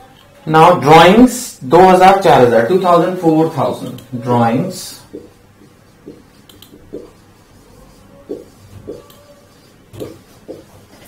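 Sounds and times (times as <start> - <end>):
marker writing on whiteboard: 1.7 - 11.0.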